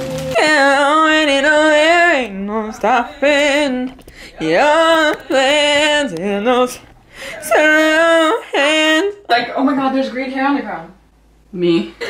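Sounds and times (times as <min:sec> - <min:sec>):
woman singing: 0:00.0 - 0:09.3.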